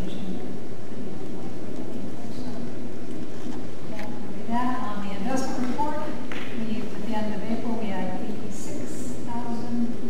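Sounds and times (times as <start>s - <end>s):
loud steady background noise: 0.0s - 10.0s.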